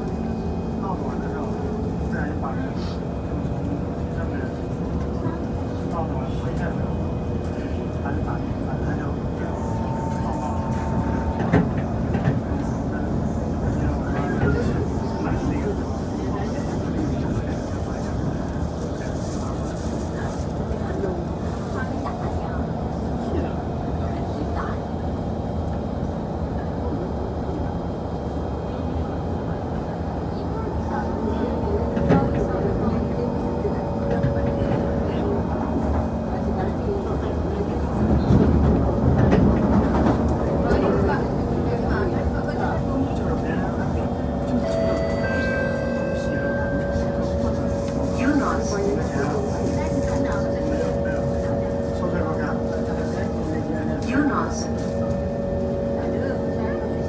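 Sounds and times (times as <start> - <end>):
train wheels rumbling on rail: 0.0 - 57.0.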